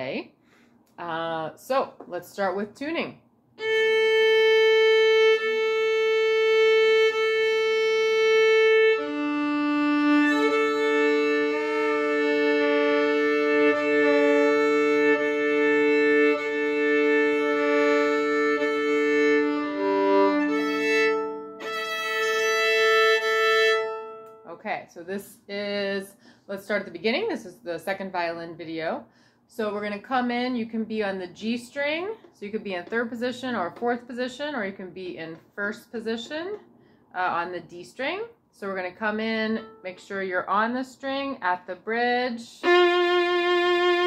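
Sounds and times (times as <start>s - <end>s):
violin bowed notes: 3.6s - 24.5s, 39.3s - 40.0s, 42.4s - 44.0s.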